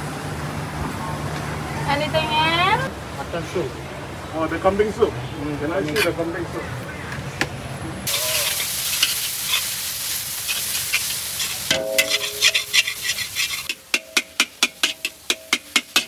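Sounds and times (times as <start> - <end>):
food sizzling in a hot pan: 8.1 - 16.0
metal spatula scraping a wok: 8.1 - 16.0.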